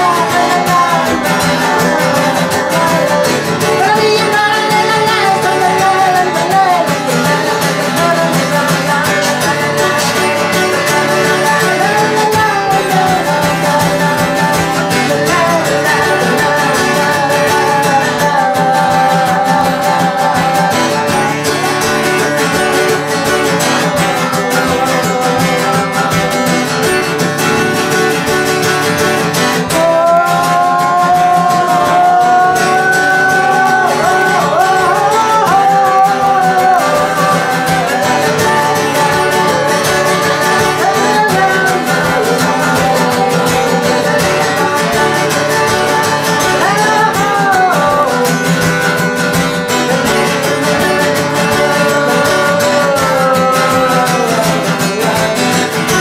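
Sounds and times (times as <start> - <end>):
man singing: 0.0 - 56.0
strummed acoustic guitar: 0.0 - 56.0.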